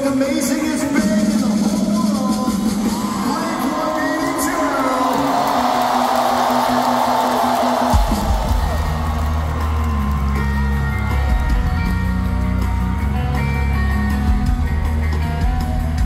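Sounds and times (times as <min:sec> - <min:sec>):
live rock band: 0:00.0 - 0:16.0
crowd din: 0:01.5 - 0:16.0.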